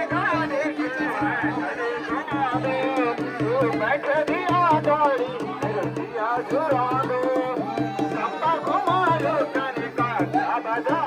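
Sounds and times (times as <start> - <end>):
crowd chatter: 0.0 - 11.0
drums beating a steady rhythm: 0.0 - 11.0.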